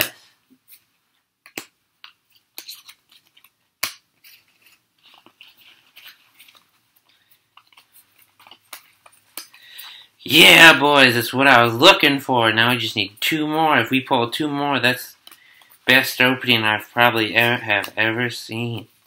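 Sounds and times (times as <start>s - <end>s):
cards clicking and rustling: 0.6s - 10.2s, 14.9s - 18.8s.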